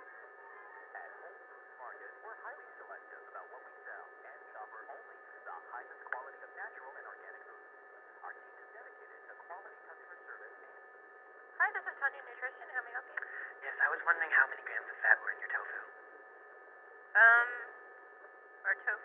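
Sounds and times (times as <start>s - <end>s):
muffled voice-like fragments: 0.0s - 10.7s
hum of phone tones: 0.0s - 19.0s.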